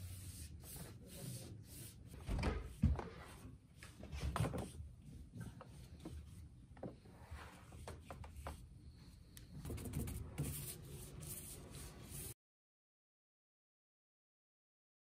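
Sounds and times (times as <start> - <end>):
paintbrush on wooden board: 9.6 - 12.4.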